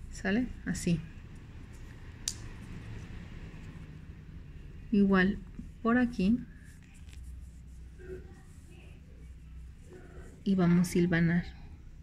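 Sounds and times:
faint room hum: 0:00.0 - 0:12.0
fabric rustle: 0:05.5 - 0:11.0.

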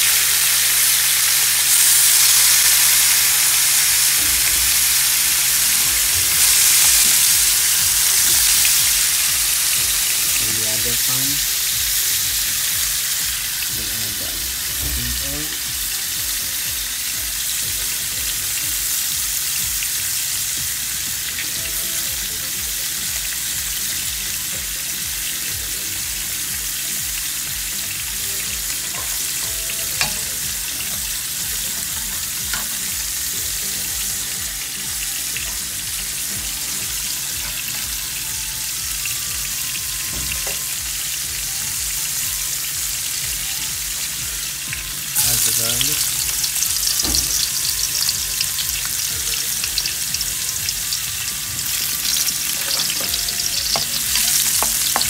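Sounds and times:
fish sizzling in oil: 0:00.0 - 0:55.0
garlic sizzling in wok: 0:00.0 - 0:55.0.

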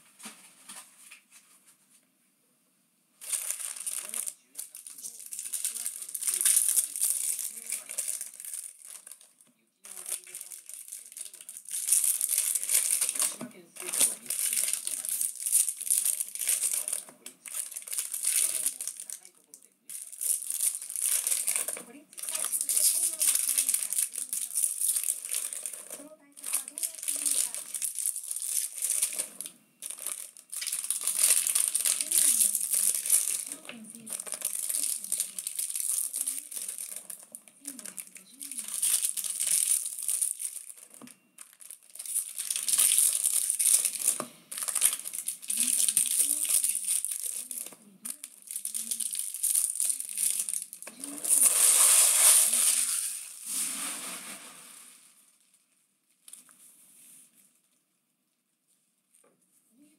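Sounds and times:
foil wrappers crinkling: 0:03.2 - 0:55.0.

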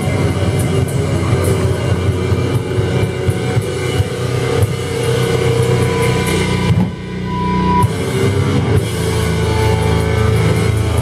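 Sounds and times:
distorted guitar and bass drone: 0:00.0 - 0:11.0
drum and cymbal hits: 0:00.0 - 0:11.0.

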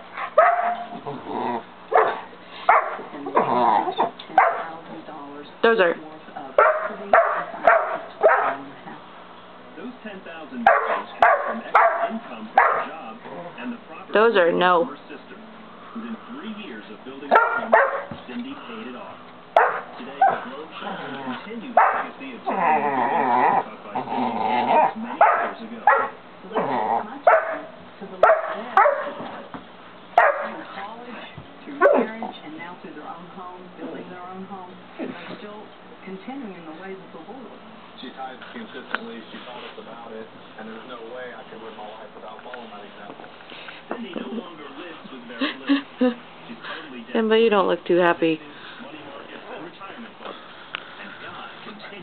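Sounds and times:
puppy barking loudly: 0:00.2 - 0:01.0, 0:01.9 - 0:03.5, 0:04.4 - 0:04.8, 0:06.6 - 0:08.7, 0:10.7 - 0:12.9, 0:17.3 - 0:18.2, 0:19.6 - 0:20.4, 0:21.8 - 0:22.1, 0:25.1 - 0:26.2, 0:27.2 - 0:29.3, 0:30.2 - 0:30.7.

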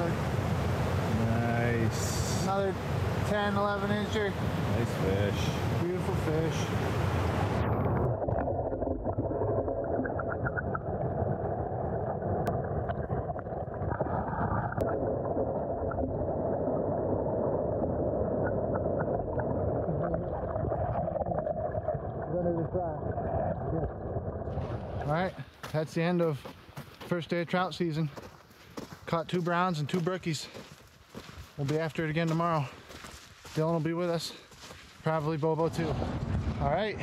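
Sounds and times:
muffled stream water rushing: 0:00.0 - 0:26.0.

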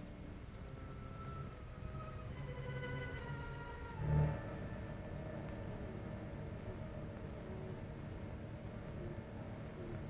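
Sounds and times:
faint background music: 0:00.0 - 0:10.0
film soundtrack rumble and hiss: 0:00.0 - 0:10.0.

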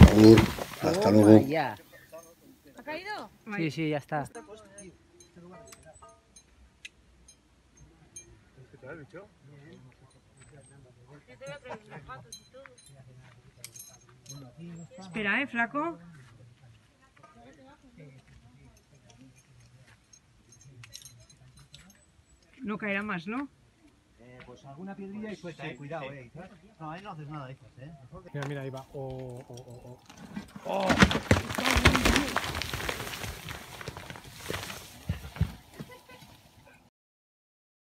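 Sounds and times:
rocks clattering down a cliff: 0:00.0 - 0:01.6, 0:28.4 - 0:36.4
light clicks and clinks: 0:12.2 - 0:14.6, 0:18.2 - 0:22.6, 0:28.4 - 0:30.6
distant voices talking: 0:28.3 - 0:36.8.

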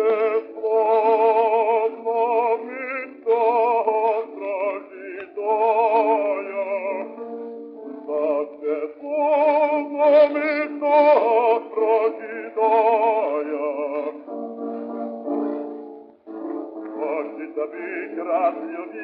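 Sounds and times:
bass voice singing with vibrato: 0:00.0 - 0:16.0, 0:17.0 - 0:19.0.

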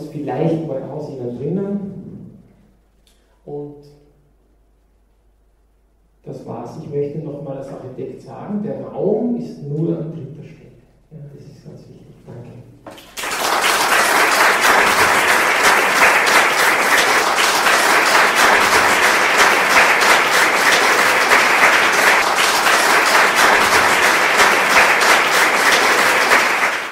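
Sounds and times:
audience applauding: 0:12.9 - 0:26.9.

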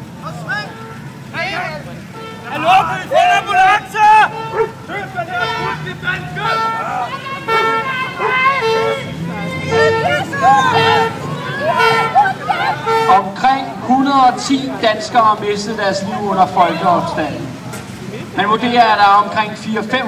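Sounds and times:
people crying out and wailing: 0:00.0 - 0:18.8
vehicle horn beeps: 0:00.6 - 0:14.4.

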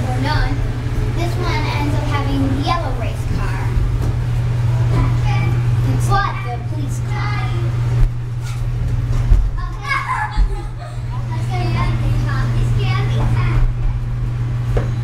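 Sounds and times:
steady low hum: 0:00.0 - 0:15.0
children's voices and shouts: 0:09.6 - 0:13.7.

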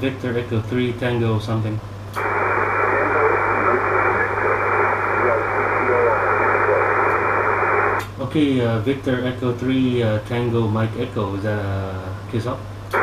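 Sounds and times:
steady low hum: 0:00.0 - 0:13.0
radio hiss: 0:02.2 - 0:08.0
weak voice in radio noise: 0:02.2 - 0:08.0.

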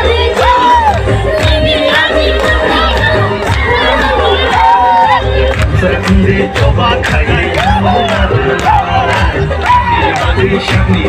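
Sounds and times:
crowd cheering and shouting: 0:00.0 - 0:11.0
loud music with heavy bass: 0:00.0 - 0:11.0.

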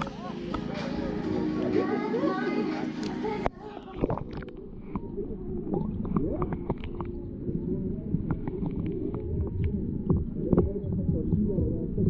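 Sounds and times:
underwater rumble of moving water: 0:03.8 - 0:12.0
sharp clicks and crackles: 0:05.7 - 0:07.2.

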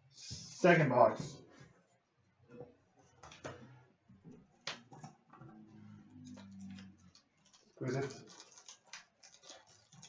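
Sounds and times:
small clicks and handling: 0:06.2 - 0:10.0.

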